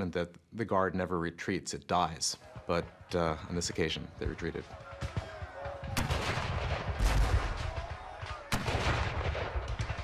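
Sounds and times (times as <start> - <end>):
musket gunshots crackling: 4.9 - 10.0
cannon booming blasts: 5.8 - 10.0.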